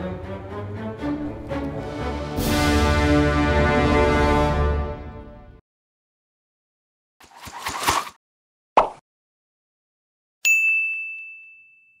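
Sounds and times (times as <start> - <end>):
faint tinkles: 10.5 - 12.0.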